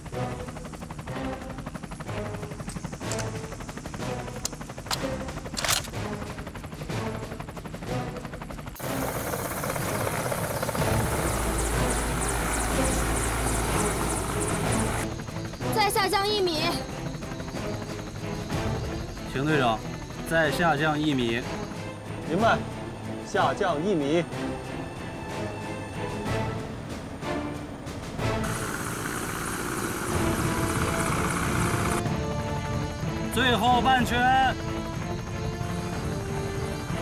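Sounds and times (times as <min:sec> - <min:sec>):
background music: 0:00.0 - 0:37.0
helicopter rotor and engine: 0:00.0 - 0:37.0.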